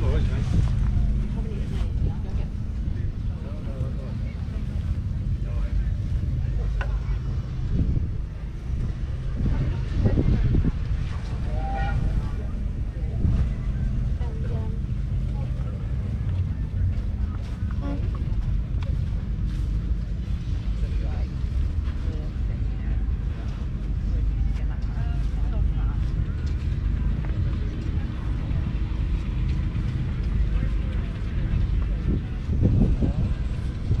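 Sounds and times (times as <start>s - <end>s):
diesel tractor engine droning: 0.0s - 34.0s
people's voices: 0.0s - 34.0s
wind buffeting microphone: 0.0s - 34.0s.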